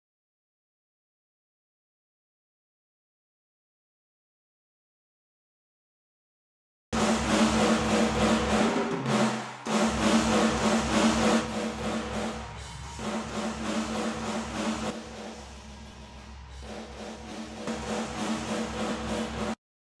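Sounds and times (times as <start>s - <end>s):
drum kit playing a metal groove: 7.0s - 19.6s.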